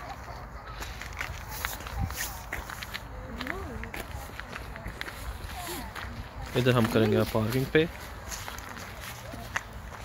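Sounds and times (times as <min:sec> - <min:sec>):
faint voices: 0:00.0 - 0:10.0
footsteps on gravel: 0:00.0 - 0:10.0.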